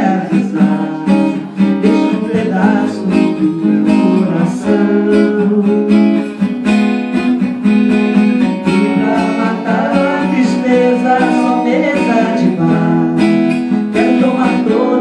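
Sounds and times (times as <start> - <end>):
acoustic guitar strumming: 0.0 - 15.0
woman singing into microphone: 14.0 - 15.0.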